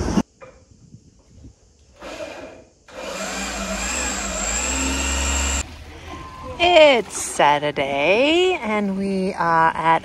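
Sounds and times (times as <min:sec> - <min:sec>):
power tool motor running: 0:02.0 - 0:05.6.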